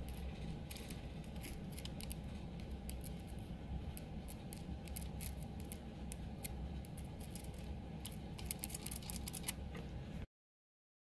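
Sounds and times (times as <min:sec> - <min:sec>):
steady low hum: 0:00.0 - 0:10.3.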